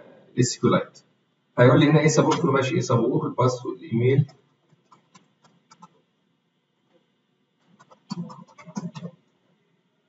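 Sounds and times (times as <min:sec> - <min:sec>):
low wordless voice sound: 0:00.4 - 0:01.0, 0:01.6 - 0:04.3
computer keyboard typing: 0:04.7 - 0:06.0, 0:07.7 - 0:09.1.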